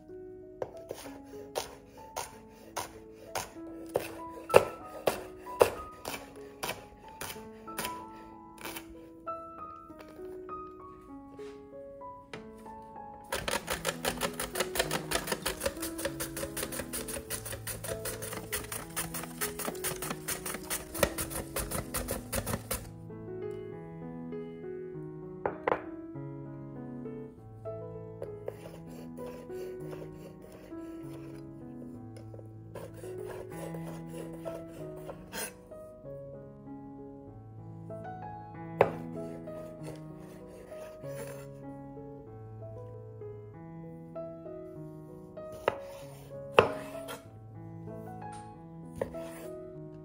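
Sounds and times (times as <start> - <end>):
background music with held notes: 0.0 - 50.0
knife slicing rasp: 0.9 - 8.0, 8.6 - 8.9, 13.3 - 22.9, 28.5 - 31.4, 32.8 - 35.5, 39.8 - 41.4, 45.6 - 47.2
carrot scraping on grater: 1.6 - 8.0, 8.6 - 8.9, 13.3 - 22.9.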